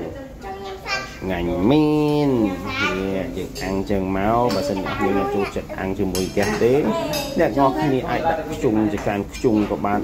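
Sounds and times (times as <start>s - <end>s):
continuous voices: 0.0s - 10.0s
utensils clinking against dishes: 3.4s - 8.0s, 8.6s - 10.0s.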